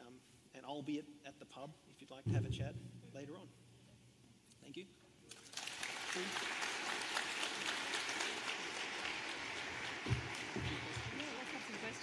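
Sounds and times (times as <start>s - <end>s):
audience applauding: 5.3s - 12.0s.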